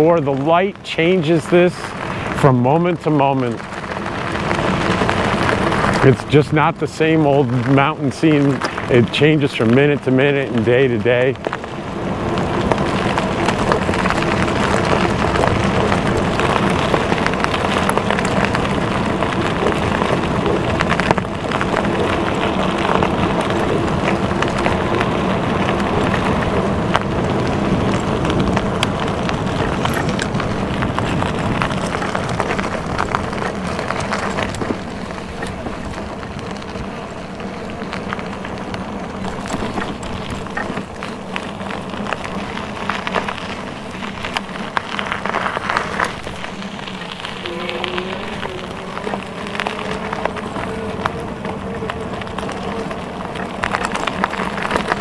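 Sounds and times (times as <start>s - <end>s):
tyres crunching over gravel: 0.0s - 55.0s
wind buffeting microphone: 0.0s - 55.0s.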